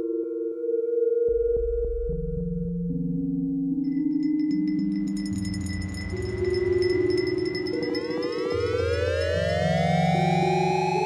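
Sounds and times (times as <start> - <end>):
thin steady high tone: 3.9 - 11.0.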